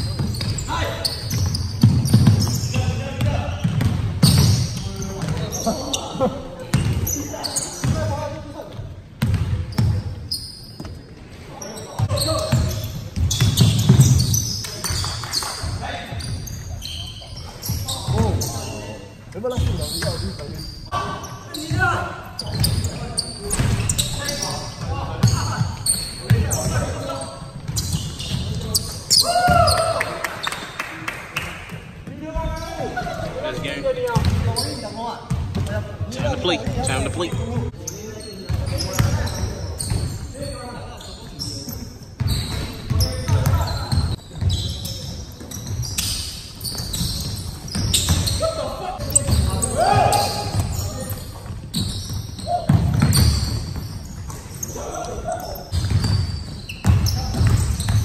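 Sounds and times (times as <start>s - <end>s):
basketball bouncing on wooden floor: 1.3s - 5.6s, 9.2s - 10.0s, 12.0s - 14.4s, 49.2s - 54.4s, 55.7s - 58.0s.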